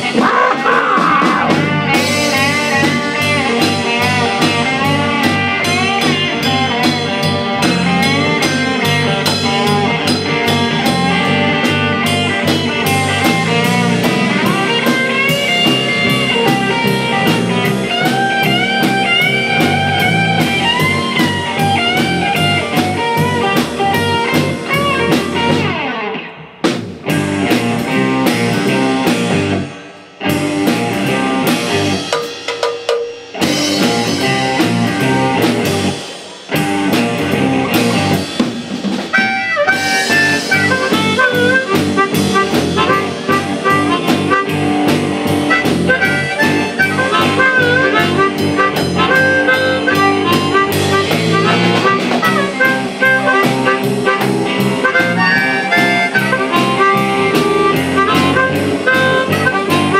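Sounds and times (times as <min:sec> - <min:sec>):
bass: 0:00.0 - 0:32.5, 0:33.3 - 0:59.9
keyboard: 0:00.0 - 0:32.5, 0:33.4 - 0:59.9
drum kit: 0:00.0 - 0:59.9
electric guitar lead with bending notes: 0:00.0 - 0:59.9.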